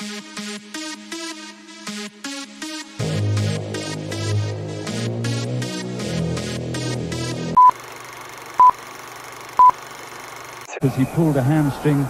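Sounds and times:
short high beeps: 7.6 - 7.8.

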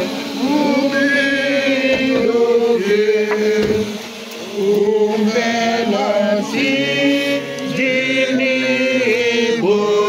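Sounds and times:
group singing a hymn: 0.0 - 10.0.

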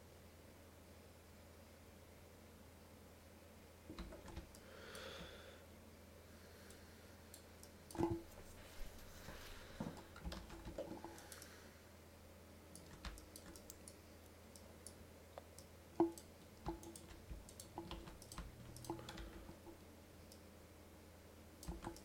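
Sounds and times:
mouse and keyboard clicks: 10.0 - 11.5, 12.7 - 14.0, 14.6 - 19.7, 21.6 - 22.0.

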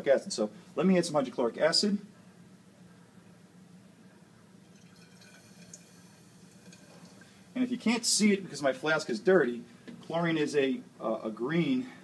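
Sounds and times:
fume hood hum: 0.0 - 12.0
liquid trickling into glass flask: 4.6 - 7.4.

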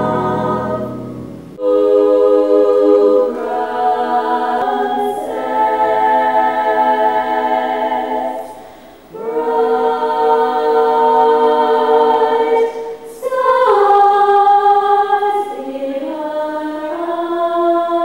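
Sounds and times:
female choir singing: 0.0 - 18.0.

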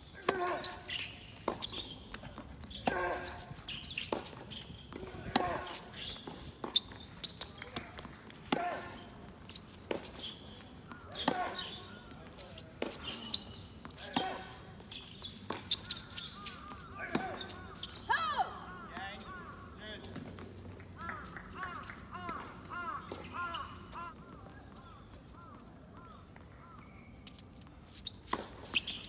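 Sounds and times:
tennis ball bouncing: 1.4 - 10.2, 10.8 - 12.0, 15.4 - 18.0.

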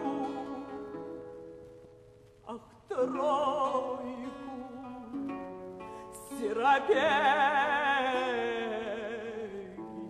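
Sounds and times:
plucked guitar: 0.0 - 10.0.

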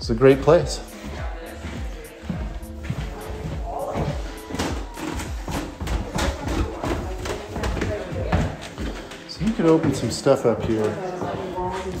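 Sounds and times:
background music: 0.0 - 12.0
footsteps down wooden stairs: 0.0 - 12.0.

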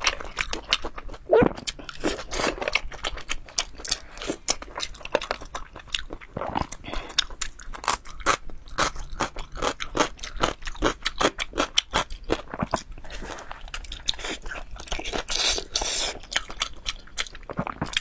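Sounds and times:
wet chewing and mouth sounds: 0.0 - 18.0.

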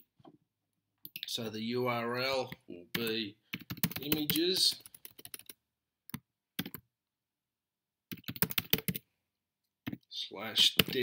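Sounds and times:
computer keyboard typing: 3.0 - 6.8, 8.1 - 9.0.

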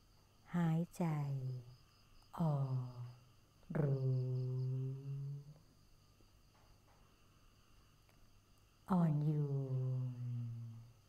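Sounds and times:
woman speaking calmly: 0.5 - 1.8, 2.4 - 5.6, 8.9 - 10.9
woman humming: 2.4 - 5.6, 8.9 - 11.0.

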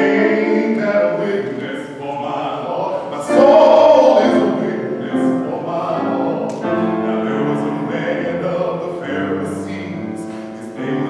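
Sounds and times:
grand piano accompaniment: 0.0 - 11.0
man singing classical song: 0.0 - 11.0.

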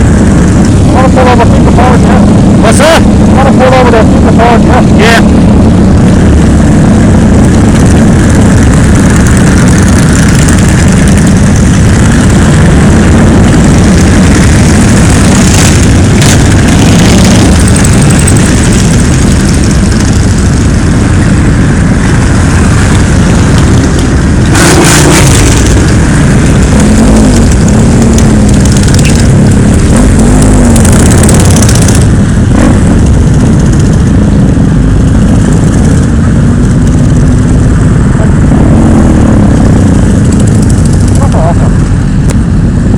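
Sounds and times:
motorcycle engines rumbling: 0.0 - 42.9
motorcycles revving: 0.0 - 42.9.

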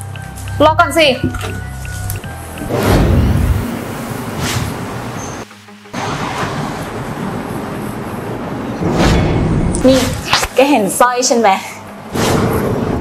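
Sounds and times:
road traffic noise: 3.4 - 8.8.

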